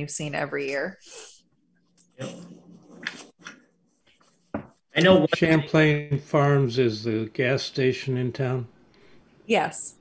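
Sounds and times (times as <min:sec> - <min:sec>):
person speaking quietly: 0:05.0 - 0:06.8.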